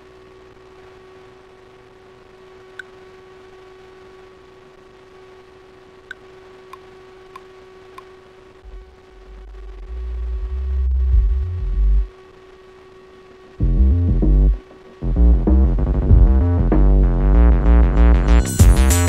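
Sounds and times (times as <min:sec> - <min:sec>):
steady hum: 0:00.0 - 0:19.0
deep synth bass: 0:08.6 - 0:12.1, 0:13.6 - 0:19.0
electronic beat with chords: 0:09.9 - 0:12.1, 0:13.6 - 0:19.0.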